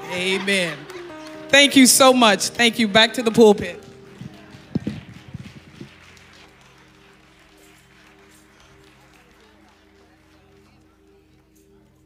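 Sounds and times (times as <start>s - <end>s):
faint congregation murmur: 0.0s - 12.0s.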